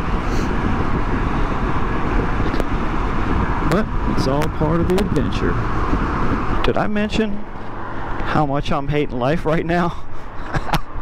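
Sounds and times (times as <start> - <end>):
road noise: 0.0 - 11.0
wind buffeting microphone: 0.0 - 11.0.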